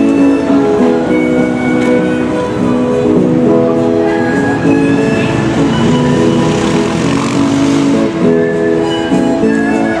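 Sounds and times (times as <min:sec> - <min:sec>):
acoustic guitar playing: 0:00.0 - 0:10.0
harmonica: 0:00.0 - 0:10.0
car passing: 0:04.4 - 0:08.6.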